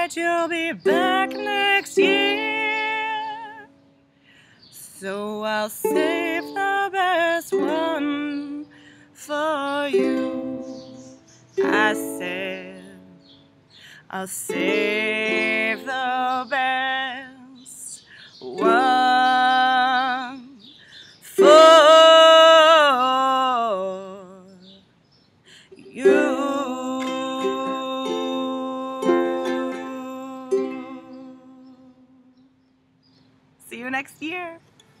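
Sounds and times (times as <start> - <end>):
woman singing long notes: 0.0 - 3.8, 4.8 - 10.8, 11.6 - 13.2, 14.0 - 24.8, 25.7 - 32.4
ukulele strummed: 0.8 - 3.7, 5.8 - 8.6, 9.8 - 13.0, 14.5 - 17.2, 18.5 - 20.4, 21.4 - 23.2, 25.9 - 31.8.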